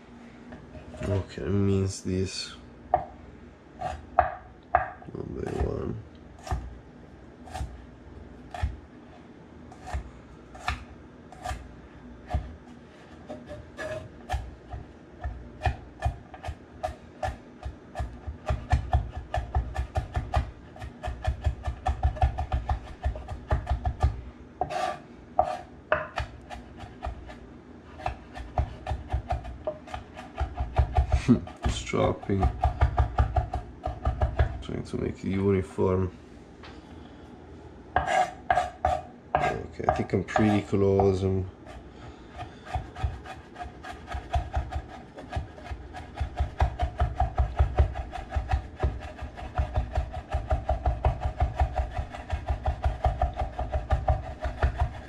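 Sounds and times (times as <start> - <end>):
knife chopping on wooden board: 6.4 - 6.7, 7.4 - 7.8, 8.5 - 8.8, 9.7 - 11.6, 12.3 - 12.6, 13.3 - 27.4, 28.0 - 34.6, 38.0 - 41.2, 42.4 - 55.0.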